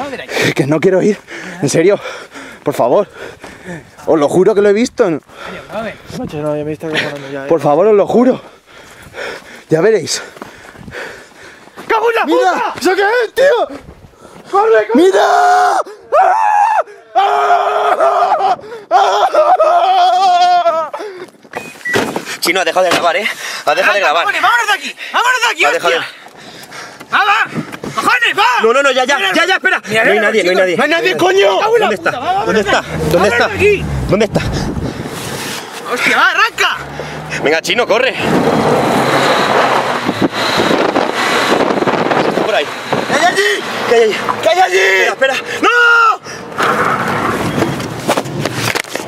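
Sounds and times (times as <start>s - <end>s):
tyres on gravel: 8.3s - 14.6s, 31.0s - 40.7s, 46.2s - 49.0s
men screaming: 11.8s - 13.8s, 14.5s - 21.1s, 27.2s - 35.2s, 41.9s - 46.5s
car engine accelerating: 31.2s - 45.6s.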